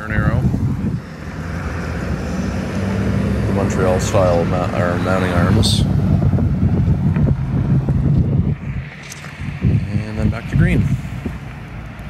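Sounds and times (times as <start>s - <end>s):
road traffic hum: 0.0s - 12.0s
wind buffeting microphone: 0.0s - 12.0s.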